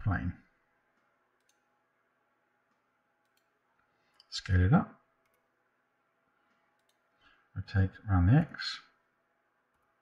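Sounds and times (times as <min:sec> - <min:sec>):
faint computer mouse clicks: 0:00.9 - 0:01.7, 0:02.7 - 0:03.5, 0:06.5 - 0:07.0.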